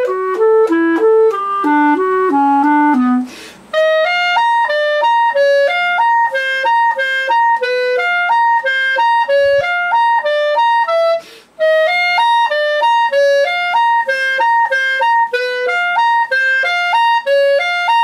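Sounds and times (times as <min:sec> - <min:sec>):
clarinet playing short notes: 0:00.0 - 0:18.0
quick breath: 0:03.3 - 0:03.7, 0:11.2 - 0:11.6.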